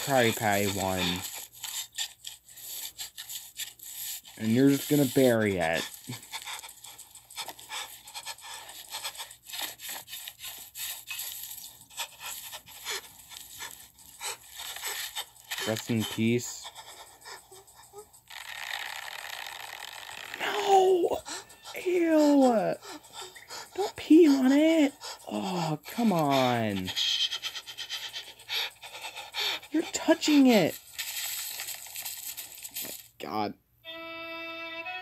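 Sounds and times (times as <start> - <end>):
shovel scraping gravelly soil: 0.0 - 1.9, 4.0 - 6.2, 14.3 - 16.4.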